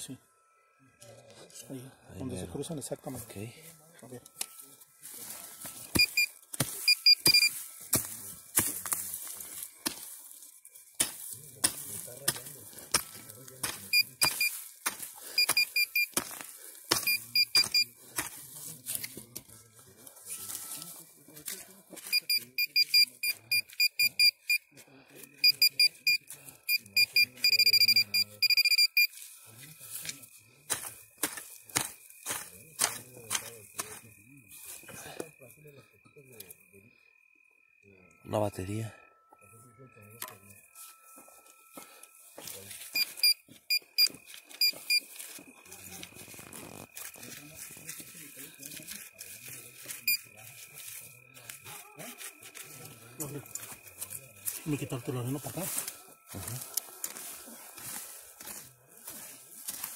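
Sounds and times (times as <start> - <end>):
digging clicks and scrapes in soil: 3.0 - 23.9, 29.0 - 35.0, 42.4 - 59.9
metal detector pinpointer beeping: 5.7 - 10.1, 12.9 - 18.3, 22.0 - 24.7, 25.3 - 29.2, 42.4 - 47.3, 49.9 - 50.3.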